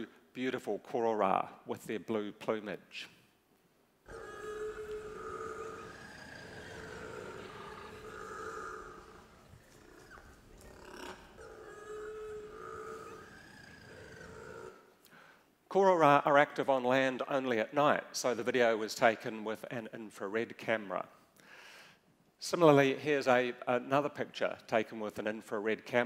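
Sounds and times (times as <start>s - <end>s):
penguin braying calls: 4.1s - 14.8s.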